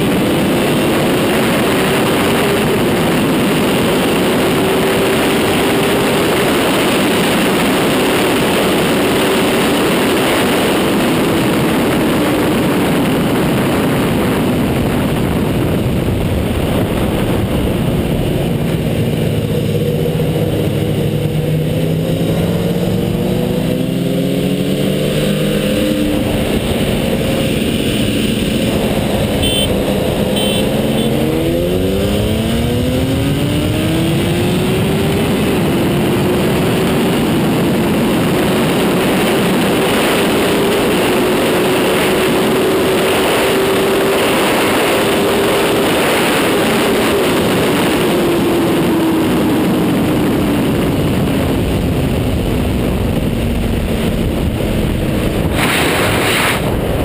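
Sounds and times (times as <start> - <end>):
motorcycle engine at full throttle: 0.0 - 57.0
wind rush on microphone: 0.0 - 57.0.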